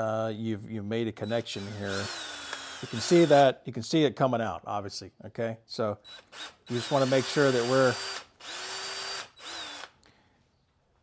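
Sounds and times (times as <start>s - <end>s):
electric drill whining: 1.2s - 3.4s, 6.1s - 10.0s.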